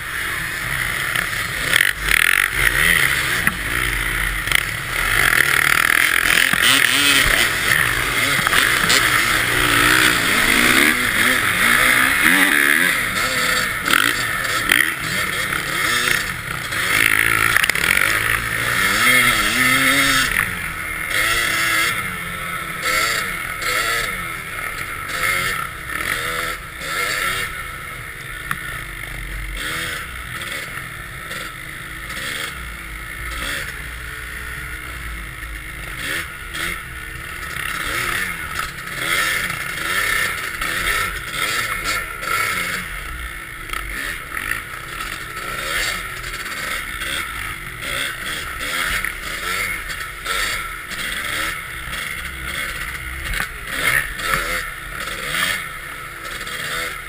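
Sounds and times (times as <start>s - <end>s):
dirt bike engines revving: 0.0s - 57.0s.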